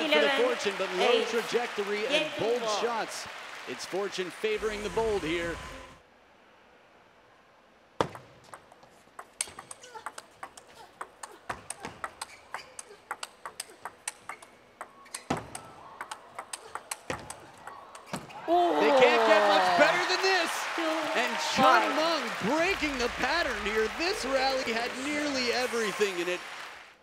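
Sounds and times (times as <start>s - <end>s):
crowd cheering: 0.0s - 6.0s, 15.4s - 27.0s.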